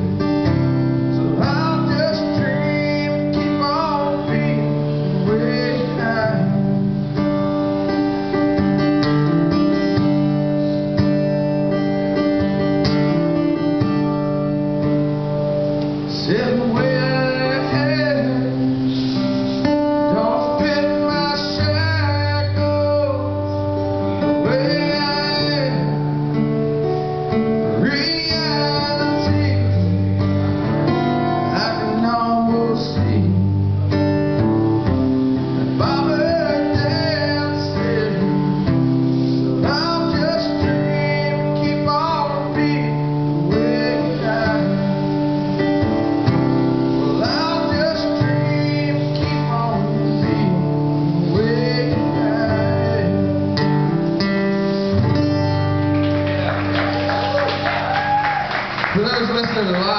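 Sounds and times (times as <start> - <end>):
acoustic guitar strumming: 0.0 - 59.9
person singing: 39.3 - 45.2.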